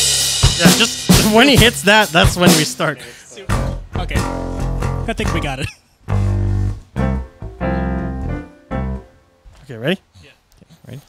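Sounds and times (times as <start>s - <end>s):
electric keyboard held notes: 5.2s - 9.4s.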